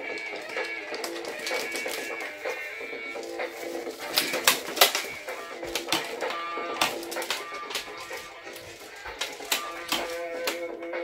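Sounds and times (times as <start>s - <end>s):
toy electric guitar notes: 0.0s - 11.0s.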